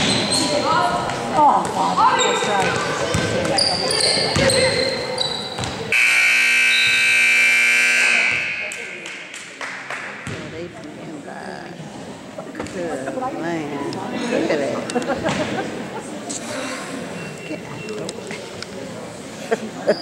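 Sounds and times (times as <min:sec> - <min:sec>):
shoe squeaks: 0:00.0 - 0:00.8, 0:02.1 - 0:05.9
voices: 0:00.0 - 0:20.0
basketball bouncing on court: 0:02.6 - 0:03.6, 0:04.2 - 0:04.8, 0:05.6 - 0:06.1, 0:10.2 - 0:10.6
scoreboard horn: 0:05.9 - 0:08.8.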